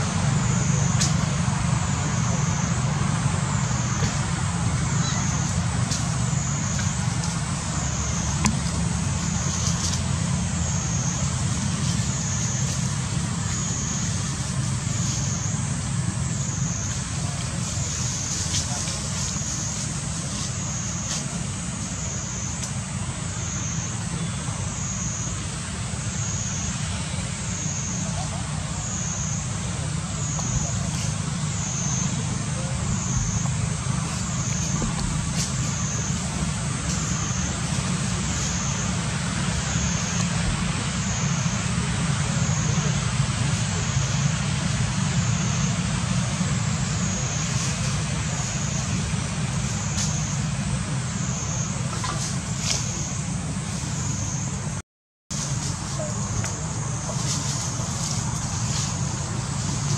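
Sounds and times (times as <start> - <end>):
cicada chorus: 0.0 - 59.9
steady low rumble: 0.0 - 59.9.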